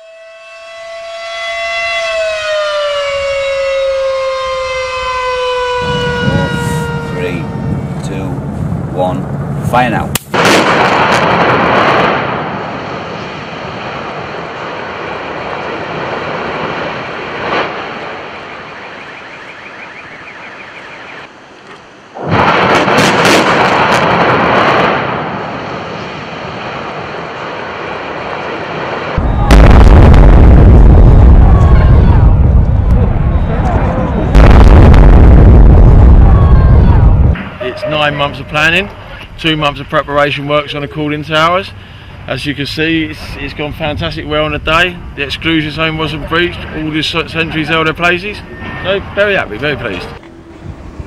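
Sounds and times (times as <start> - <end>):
demolition blast: 5.4 - 19.0, 22.2 - 40.0.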